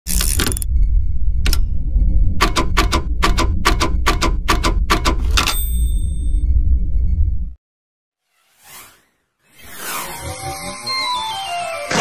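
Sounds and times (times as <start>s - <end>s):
steady low hum: 0.1s - 7.6s
sharp clicks: 2.4s - 5.6s.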